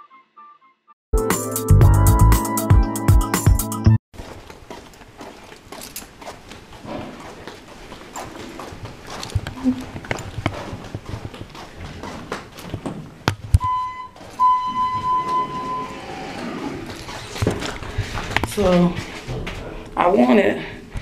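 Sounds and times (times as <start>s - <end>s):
footsteps: 4.2s - 20.1s
electronic beep: 13.6s - 16.2s.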